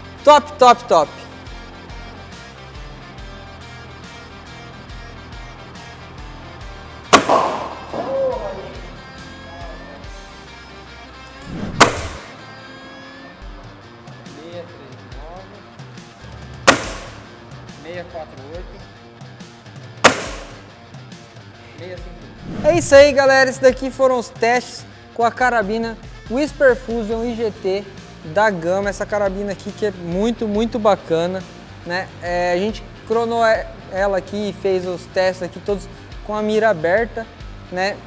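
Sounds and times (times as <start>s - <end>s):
air rifle shots: 7.1s - 7.9s, 11.5s - 12.4s, 16.7s - 17.4s, 20.0s - 20.7s.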